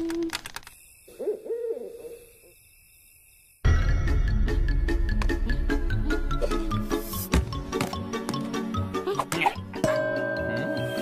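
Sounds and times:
owl hooting: 1.1 - 2.6.

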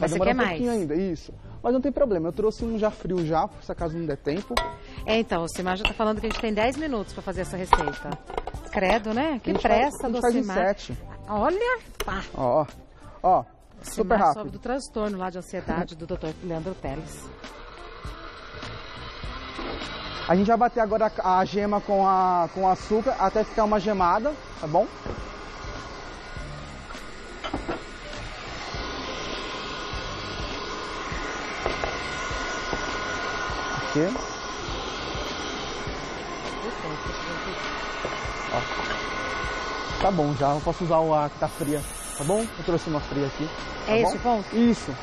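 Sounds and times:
electric stand mixer whirring: 17.3 - 45.0.

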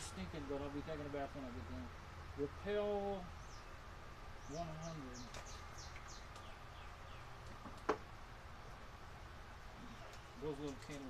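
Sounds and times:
bird singing: 0.0 - 8.0.

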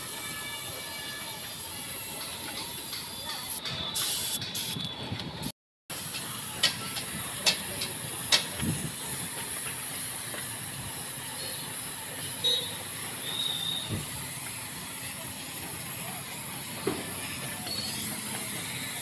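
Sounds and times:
paint spray gun hissing: 1.4 - 4.8, 5.9 - 19.0.

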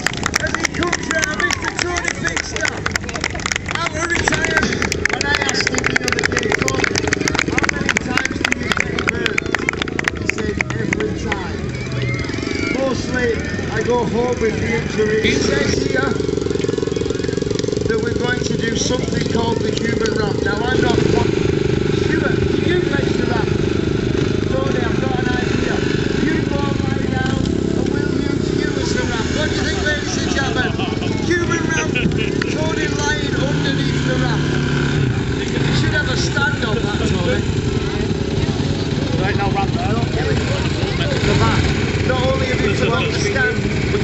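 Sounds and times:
dirt bike engines at low revs: 0.0 - 44.0
voices: 0.0 - 44.0.

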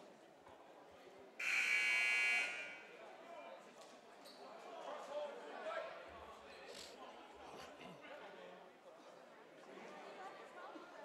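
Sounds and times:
murmur of voices: 0.0 - 11.0
scoreboard buzzer: 1.4 - 2.8.

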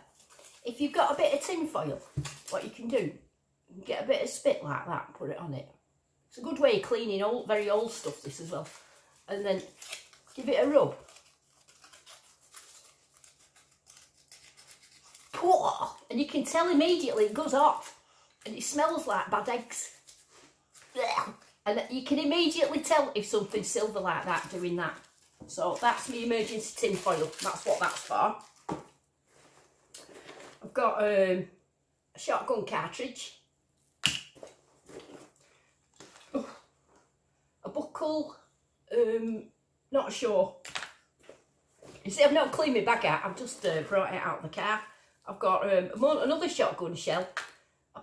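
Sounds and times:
woman speaking: 0.6 - 9.7, 10.3 - 11.0, 15.4 - 20.0, 20.9 - 28.4, 30.6 - 31.6, 32.2 - 33.4, 37.6 - 40.6, 42.0 - 47.4
foil scrunching rustle: 7.4 - 16.0, 22.6 - 28.7.

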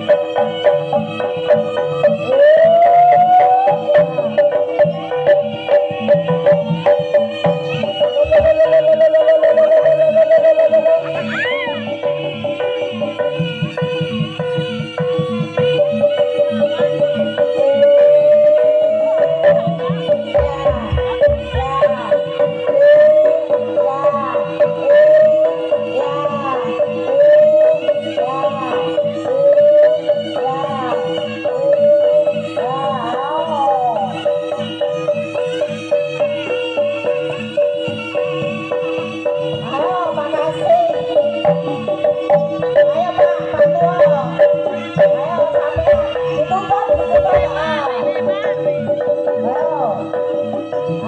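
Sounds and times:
pulsing percussion rhythm: 0.0 - 51.0
wavering melody tone: 0.0 - 51.0.

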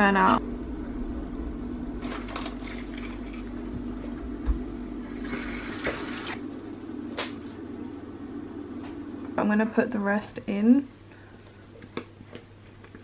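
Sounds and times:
steady low hum: 0.0 - 13.0
plastic packet rustling: 2.0 - 3.6.

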